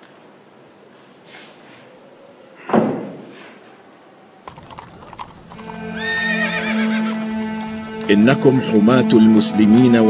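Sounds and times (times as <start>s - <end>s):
horse whinnying: 4.5s - 7.8s
horse hooves clopping: 4.5s - 10.0s
background music low notes: 5.4s - 10.0s.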